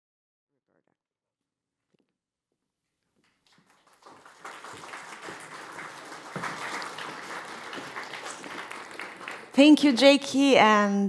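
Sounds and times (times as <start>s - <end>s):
audience applauding: 3.3s - 10.5s.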